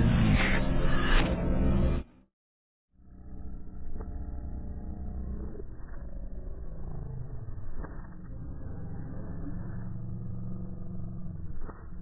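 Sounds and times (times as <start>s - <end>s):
deep steady rumble: 3.0s - 12.0s.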